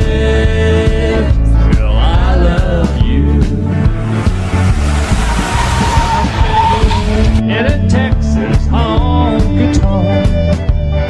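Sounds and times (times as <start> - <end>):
band music with bass line: 0.0 - 11.0
car tyres squealing: 3.6 - 7.4.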